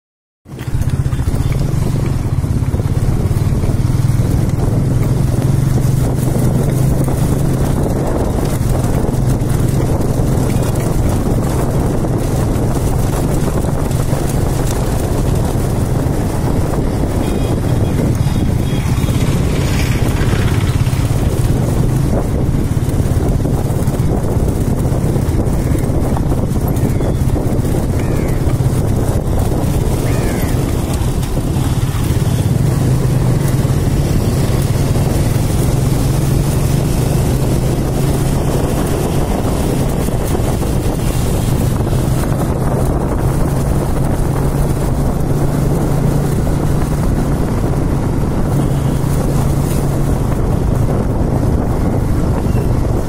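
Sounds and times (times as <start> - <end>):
road and wind noise: 0.4 - 53.0
motorcycle engine running: 0.5 - 53.0.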